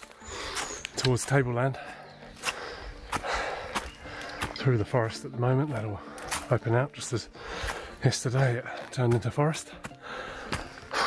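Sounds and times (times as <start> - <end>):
footsteps on forest track: 0.0 - 11.0
person breathing: 0.1 - 0.8, 1.8 - 4.6, 7.3 - 8.0, 9.8 - 11.0.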